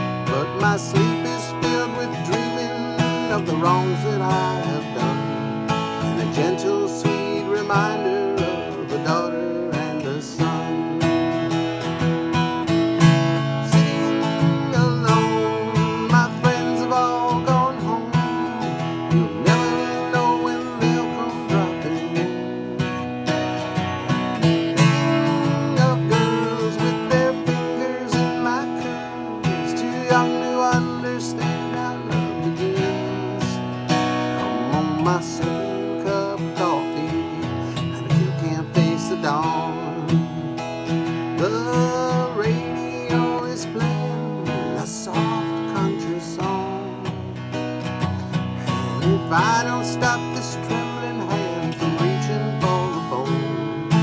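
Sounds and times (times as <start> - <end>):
acoustic guitar strumming: 0.0 - 54.0
sliding guitar melody: 0.0 - 54.0.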